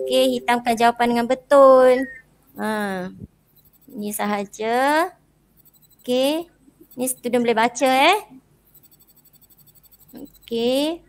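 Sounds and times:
faint rapid ticking: 0:02.5 - 0:10.9.

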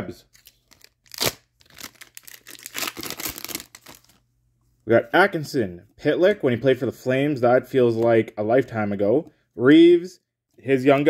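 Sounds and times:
wrapper tearing and crinkling: 0:00.3 - 0:04.2.

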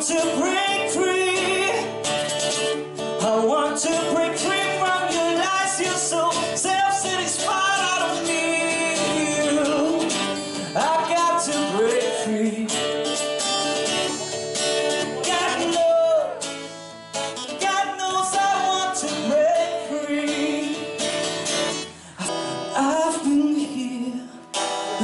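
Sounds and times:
man singing into a microphone: 0:00.0 - 0:02.0, 0:03.1 - 0:13.2, 0:15.0 - 0:16.7, 0:17.4 - 0:21.3, 0:22.1 - 0:25.0
acoustic guitar strumming: 0:00.0 - 0:25.0.

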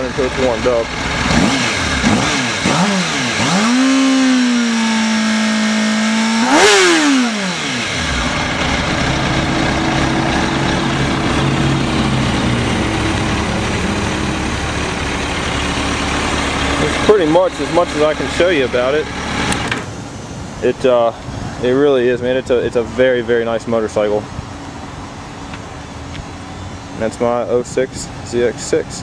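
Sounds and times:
motorcycle engine revving: 0:00.0 - 0:19.9.

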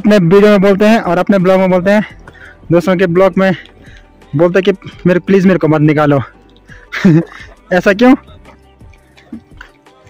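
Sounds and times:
water dripping and trickling: 0:00.0 - 0:10.0.

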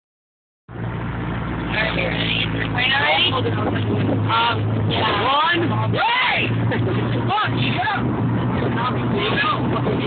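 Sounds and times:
car engine hum inside cabin: 0:00.7 - 0:10.0.

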